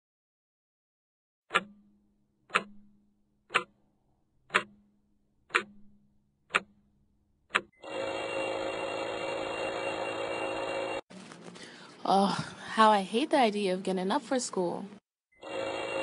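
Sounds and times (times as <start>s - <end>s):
clock ticking: 1.5s - 3.8s, 4.4s - 6.9s, 7.5s - 7.8s
alarm clock ringing: 7.7s - 11.0s, 15.4s - 16.0s.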